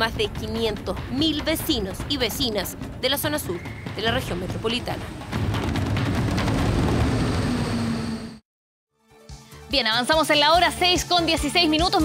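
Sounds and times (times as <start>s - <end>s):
subway train rumbling past: 4.5s - 8.4s.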